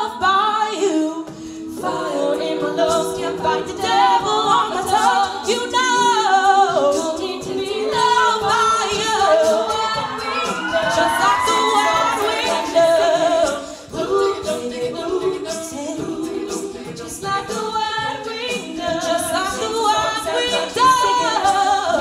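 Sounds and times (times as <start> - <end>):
vocal percussion: 0.0 - 22.0
women singing a cappella: 0.0 - 22.0.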